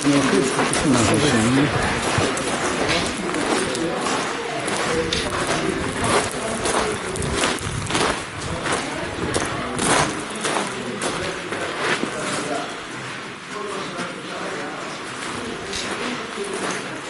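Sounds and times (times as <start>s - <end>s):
footsteps crunching on gravel: 0.0s - 12.7s.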